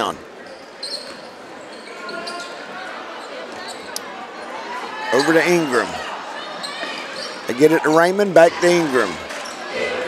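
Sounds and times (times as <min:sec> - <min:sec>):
crowd murmur: 0:00.0 - 0:10.0
sneaker squeaks: 0:00.4 - 0:03.9, 0:06.6 - 0:07.5.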